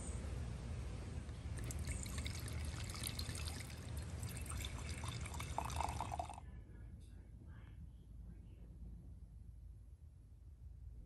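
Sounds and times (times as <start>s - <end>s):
wine pouring into glasses: 1.6s - 6.4s.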